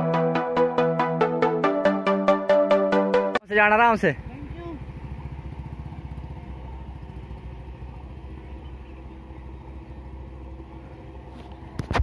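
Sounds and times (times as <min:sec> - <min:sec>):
motorcycle engine at low revs: 0:04.1 - 0:12.0.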